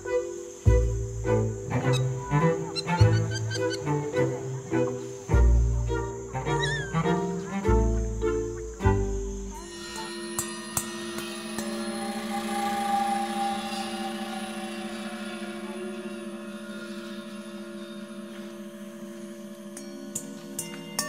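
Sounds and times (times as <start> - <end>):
sustained held music notes: 0.0 - 21.0
soft percussive strikes: 9.5 - 21.0.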